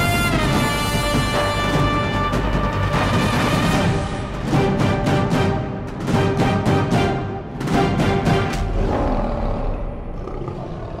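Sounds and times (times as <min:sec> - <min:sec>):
lion roaring: 0:08.6 - 0:11.0.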